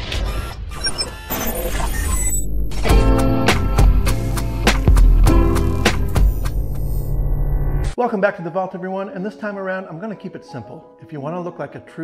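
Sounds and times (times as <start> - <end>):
high electronic blips: 0.3 - 3.0, 5.6 - 8.0
deep bass drone: 2.4 - 8.0
music: 2.7 - 12.0.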